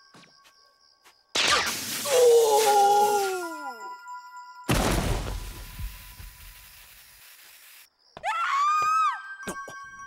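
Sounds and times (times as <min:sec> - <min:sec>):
heavy cartoon crash: 0:04.7 - 0:05.6.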